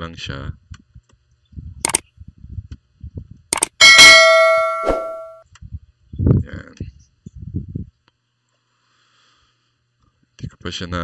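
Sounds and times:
sharp clicks: 0:03.5 - 0:03.8
bell-like ding: 0:03.8 - 0:05.4.

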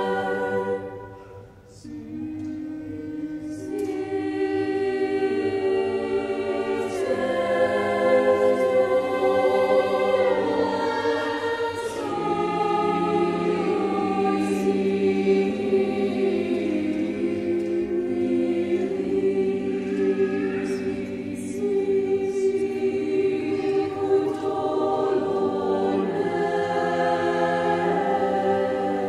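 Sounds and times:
mixed choir singing: 0:00.0 - 0:29.0.

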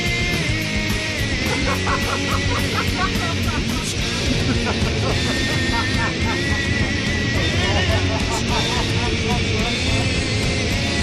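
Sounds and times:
music: 0:00.0 - 0:11.0
man laughing stifled: 0:01.4 - 0:10.4.

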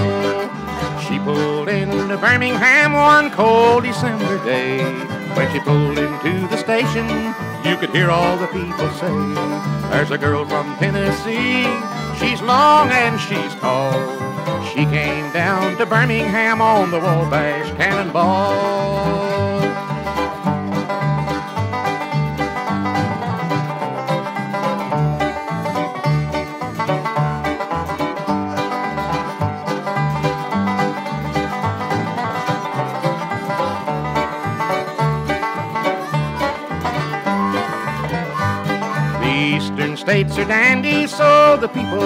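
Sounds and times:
banjo: 0:00.0 - 0:42.0
bluegrass band playing: 0:00.0 - 0:42.0.

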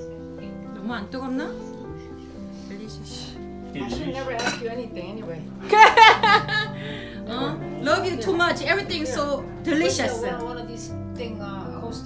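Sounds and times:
background music: 0:00.0 - 0:12.0
dishware clinking: 0:03.9 - 0:04.8
glass lid against a dish: 0:04.4 - 0:04.6.

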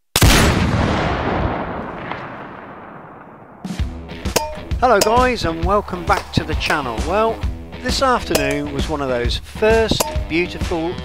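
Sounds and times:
music with sharp percussive hits: 0:04.2 - 0:09.0, 0:09.9 - 0:10.7.

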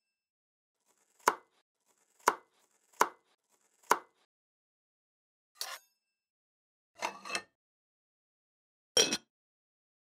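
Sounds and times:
knife chopping on wooden board: 0:01.2 - 0:01.5, 0:02.2 - 0:03.2, 0:03.8 - 0:04.2.

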